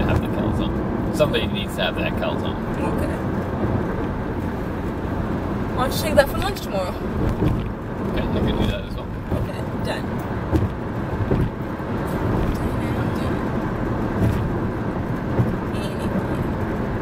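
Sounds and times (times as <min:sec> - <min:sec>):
road and engine noise in car: 0:00.0 - 0:17.0.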